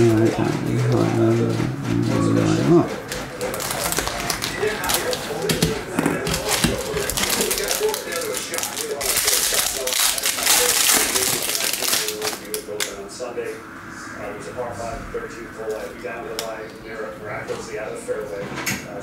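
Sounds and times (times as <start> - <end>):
foil wrapper crinkling and tearing: 3.4 - 12.9.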